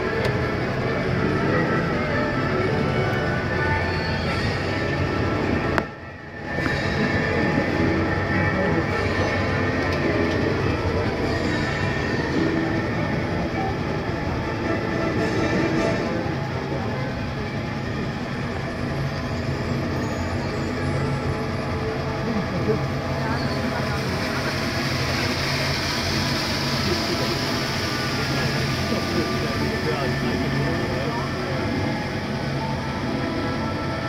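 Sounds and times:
monorail train rumbling: 0:00.0 - 0:34.0.

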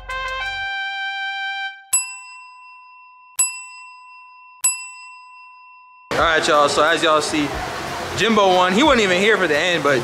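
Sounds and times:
bell-like chime dings: 0:01.9 - 0:06.1.

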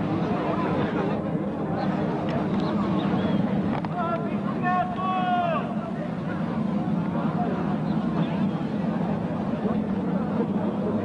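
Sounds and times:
people chattering outdoors: 0:00.0 - 0:11.0.

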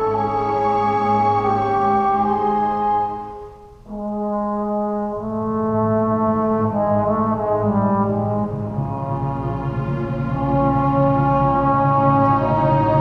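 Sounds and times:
orchestra playing: 0:00.0 - 0:13.0
trombone sustained notes: 0:00.0 - 0:13.0.

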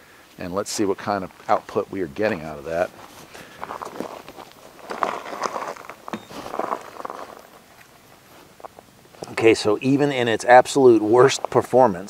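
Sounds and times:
footsteps on dry leaves: 0:02.7 - 0:08.9.

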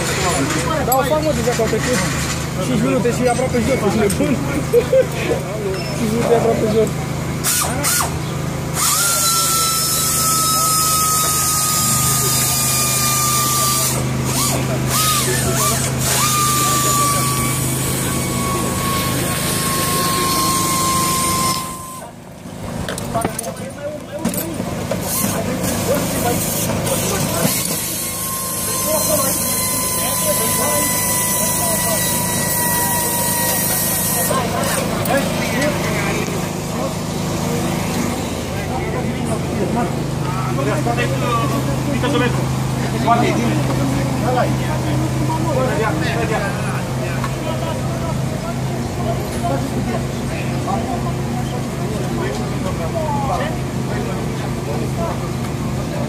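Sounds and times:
steady mechanical hum: 0:00.0 - 0:56.0
voices talking: 0:00.0 - 0:56.0.

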